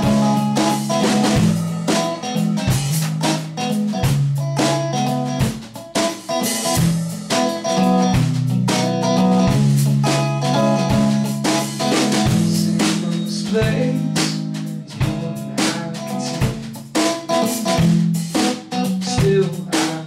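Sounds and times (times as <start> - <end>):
drum kit: 0.0 - 20.0
electric guitar: 0.0 - 20.0.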